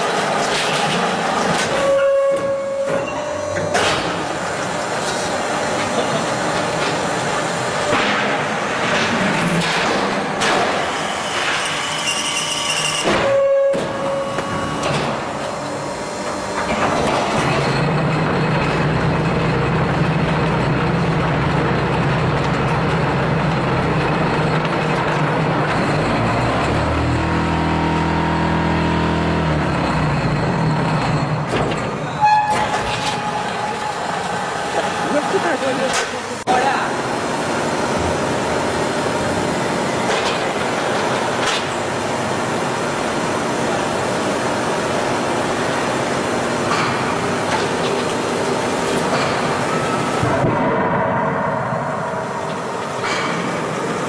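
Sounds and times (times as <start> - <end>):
machine clanking: 7.8 - 27.4.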